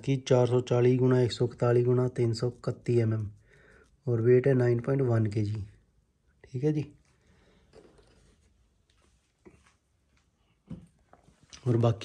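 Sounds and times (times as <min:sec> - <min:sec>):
soft rubbing noise: 0:07.8 - 0:10.4.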